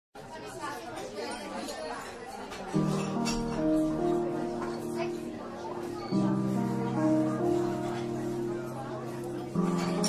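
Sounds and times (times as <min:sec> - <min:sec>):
indistinct chatter of voices: 0:00.2 - 0:10.0.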